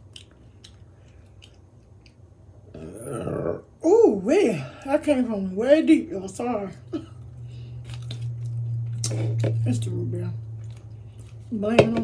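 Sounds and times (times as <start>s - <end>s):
chewing clicks: 0.1s - 2.2s.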